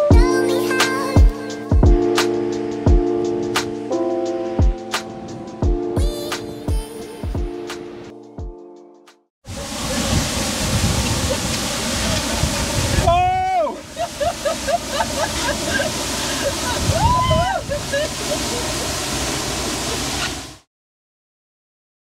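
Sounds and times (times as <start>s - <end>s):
waterfall pouring: 9.5s - 20.7s
person whooping: 13.0s - 18.7s
excited vocal sounds: 16.4s - 17.8s.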